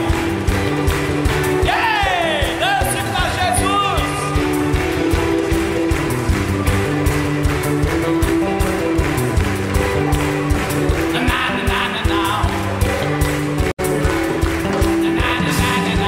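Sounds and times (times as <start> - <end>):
bass line: 0.0 - 16.0
live band instrumental groove: 0.0 - 16.0
steady drum beat: 0.0 - 16.0.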